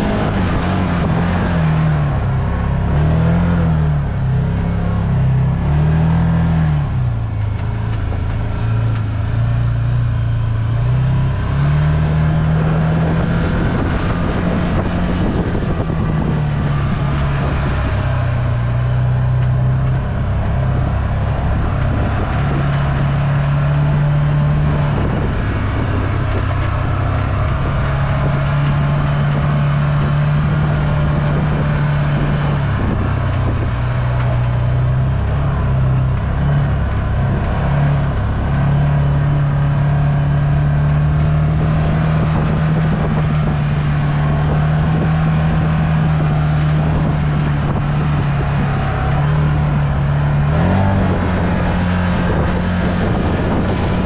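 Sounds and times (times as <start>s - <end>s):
off-road vehicle engine revving: 0.0s - 54.0s.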